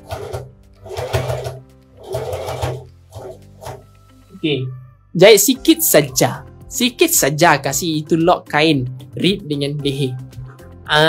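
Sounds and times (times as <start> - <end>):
sewing machine stitching: 0.0 - 3.8.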